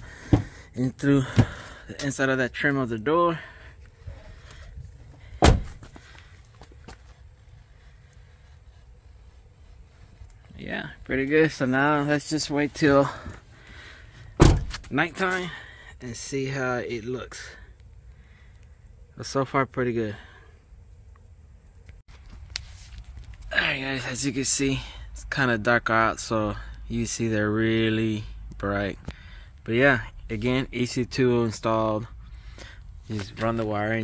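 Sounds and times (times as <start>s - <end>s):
loud thump: 5.4s - 5.9s, 14.4s - 14.8s.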